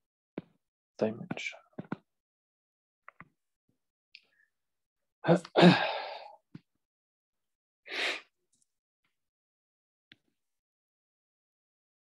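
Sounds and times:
man breathing and sighing: 0:05.3 - 0:06.6, 0:07.9 - 0:08.3.

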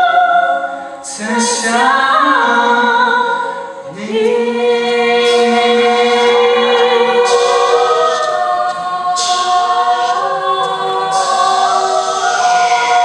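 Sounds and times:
choir singing sustained chords: 0:00.0 - 0:13.0
soloists singing: 0:00.0 - 0:13.0.

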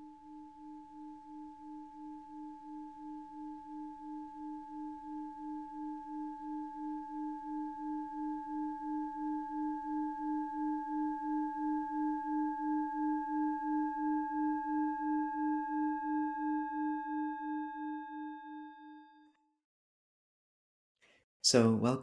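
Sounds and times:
singing bowl ringing: 0:00.0 - 0:19.3.

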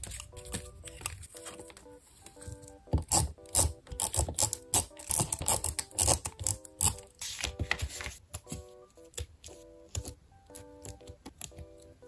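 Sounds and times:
tape roller clicking on paper: 0:03.0 - 0:07.5.

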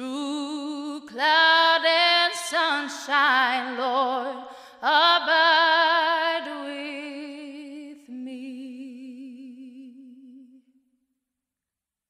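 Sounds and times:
woman breathing: 0:04.4 - 0:04.8.

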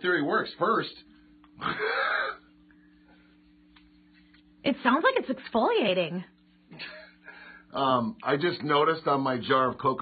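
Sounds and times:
low electrical hum: 0:00.0 - 0:10.0
person laughing: 0:01.6 - 0:02.4.

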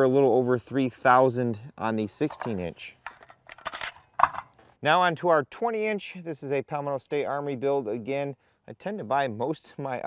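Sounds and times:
rifles clinking and knocking: 0:02.1 - 0:04.7.

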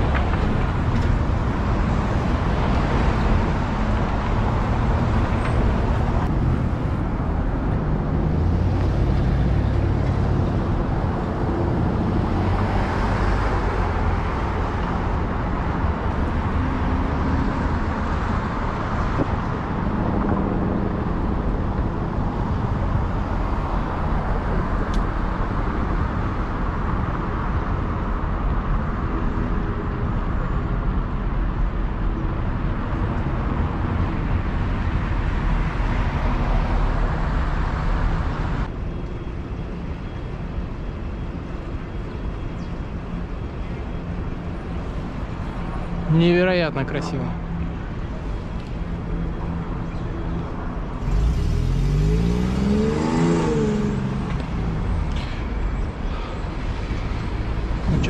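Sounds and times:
city street traffic: 0:00.0 - 0:58.0.

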